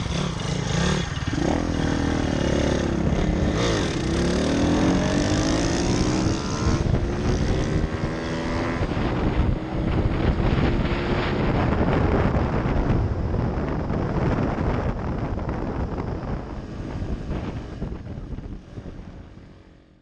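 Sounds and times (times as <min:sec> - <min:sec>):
small motorbike engines revving: 0:00.0 - 0:12.2
wind rushing over microphone: 0:00.0 - 0:20.0.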